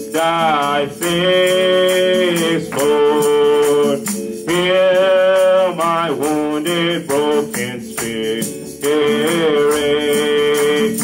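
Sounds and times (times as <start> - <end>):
hand-percussion rattle: 0.0 - 11.0
person singing worship song: 0.0 - 11.0.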